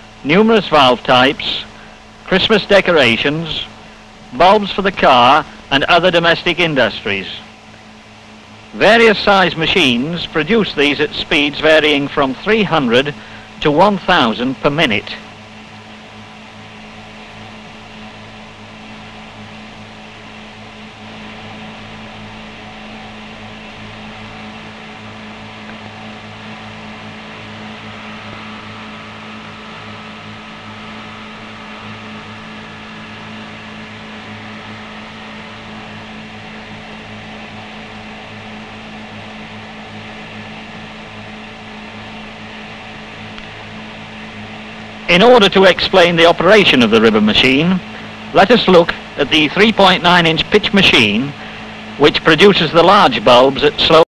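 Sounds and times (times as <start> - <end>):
steady hum with hiss: 0.0 - 54.0.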